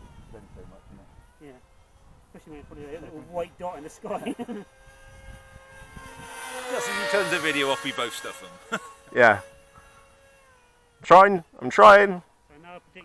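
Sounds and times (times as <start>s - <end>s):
electric model plane motors whining: 0.0s - 13.0s.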